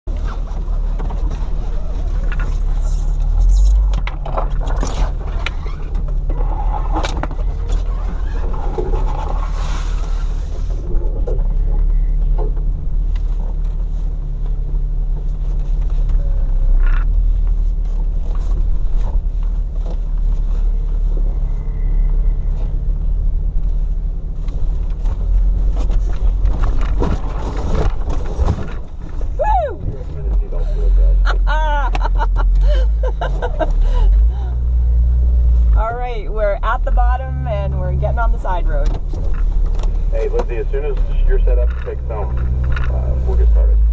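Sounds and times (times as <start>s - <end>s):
engine running at low revs: 0.1s - 43.9s
branches scraping a car body: 0.2s - 10.9s, 24.6s - 29.4s.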